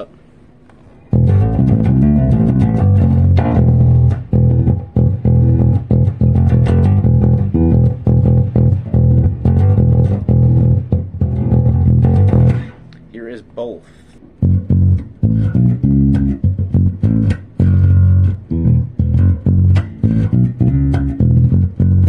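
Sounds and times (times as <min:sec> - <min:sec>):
electric bass riff: 0:01.1 - 0:12.9, 0:14.2 - 0:22.0.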